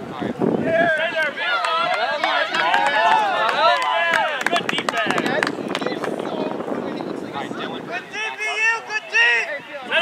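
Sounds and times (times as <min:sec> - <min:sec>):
people shouting and yelling: 0:00.1 - 0:06.7, 0:07.4 - 0:10.0.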